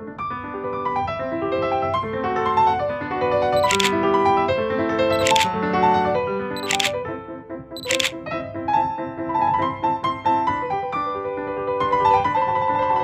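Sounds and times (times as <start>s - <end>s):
camera shutter clicks: 3.6s - 4.0s, 5.2s - 5.5s, 6.6s - 7.0s, 7.8s - 8.2s.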